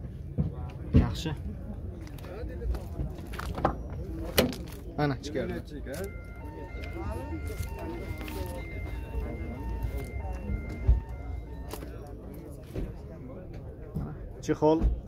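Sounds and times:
voices talking: 0:00.2 - 0:15.0
electronic beeping tune: 0:05.9 - 0:13.2.

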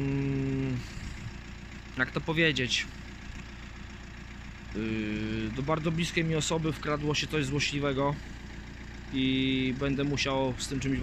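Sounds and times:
man humming: 0:00.0 - 0:01.2
car engine idling: 0:00.0 - 0:11.0.

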